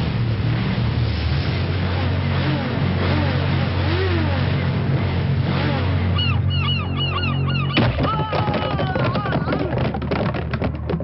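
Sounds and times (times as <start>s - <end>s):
low steady drone: 0.0s - 7.8s.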